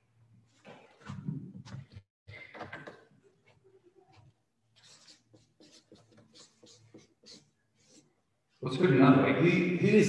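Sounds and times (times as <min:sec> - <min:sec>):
marker pen writing on paper: 0:04.1 - 0:08.2.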